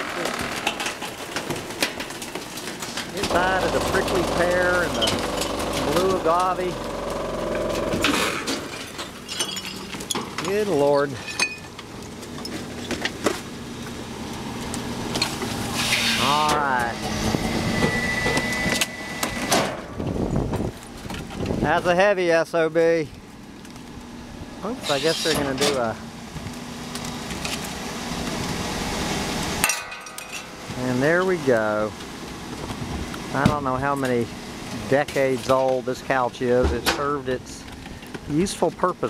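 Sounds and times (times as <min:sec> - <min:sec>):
debris knocking and clattering: 0:00.0 - 0:13.5
furniture cracking and clanking: 0:00.0 - 0:13.6
garbage truck engine humming: 0:00.0 - 0:39.0.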